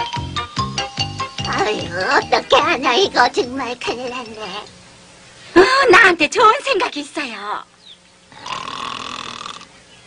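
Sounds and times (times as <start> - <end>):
cartoon animal snoring: 8.3 - 9.7.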